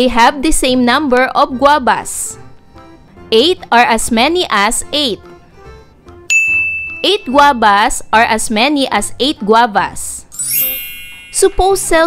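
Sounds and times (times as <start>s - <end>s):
faint background music: 0.0s - 12.0s
high-pitched ding: 6.3s - 7.4s, 10.3s - 12.0s.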